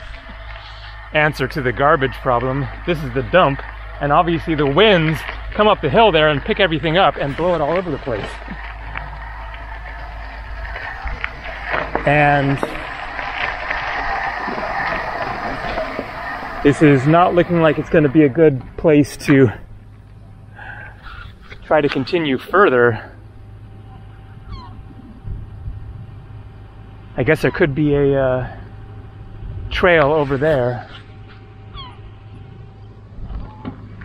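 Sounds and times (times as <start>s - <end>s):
gull call: 0.0s - 19.6s, 20.4s - 25.4s, 30.0s - 34.0s
bicycle tyres crunching on gravel: 0.0s - 34.0s
low rumble: 0.0s - 34.0s
wind noise on microphone: 7.9s - 18.8s, 24.4s - 26.4s.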